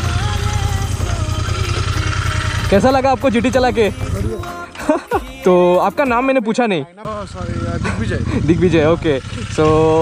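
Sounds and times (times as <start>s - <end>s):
motorcycle engine idling: 0.0s - 4.7s, 7.1s - 10.0s
man talking: 2.7s - 4.6s, 5.4s - 10.0s.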